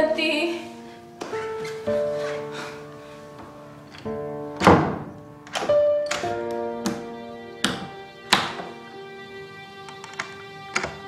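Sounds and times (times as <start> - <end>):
music score of sustained notes: 0.0 - 11.0.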